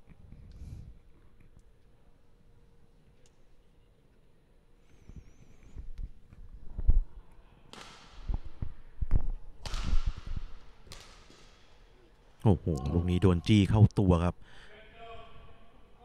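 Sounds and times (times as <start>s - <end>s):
racket striking shuttlecock: 7.7s - 8.3s, 9.6s - 11.6s.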